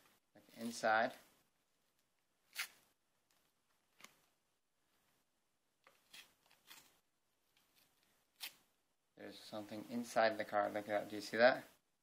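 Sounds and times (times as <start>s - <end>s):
paper card tearing: 2.5s - 2.8s, 6.0s - 6.9s, 8.4s - 8.6s.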